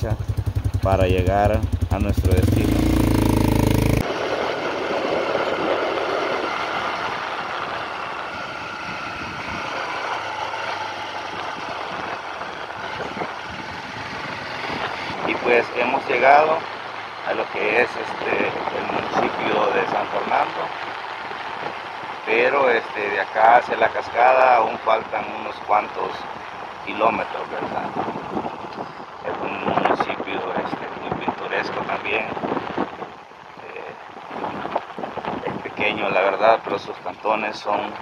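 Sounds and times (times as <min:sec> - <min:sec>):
voices: 0:00.0 - 0:04.0, 0:14.6 - 0:20.8, 0:22.2 - 0:28.3, 0:29.2 - 0:32.4, 0:33.6 - 0:34.0, 0:35.4 - 0:38.0
vehicle engine and road noise: 0:00.0 - 0:38.0.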